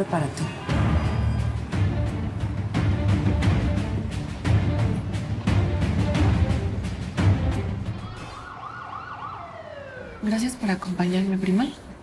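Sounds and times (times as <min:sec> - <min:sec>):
ambulance siren wailing: 0:07.9 - 0:10.6.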